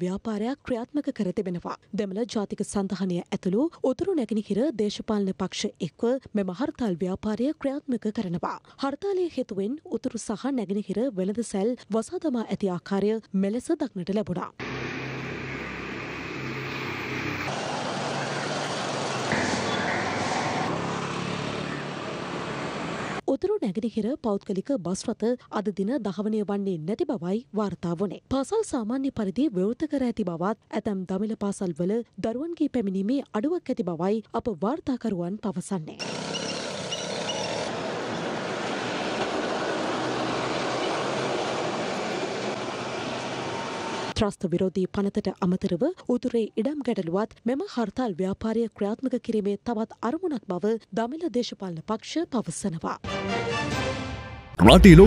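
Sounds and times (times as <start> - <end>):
steady outdoor hiss: 14.6 - 19.4
road traffic: 14.6 - 23.2, 36.0 - 44.2.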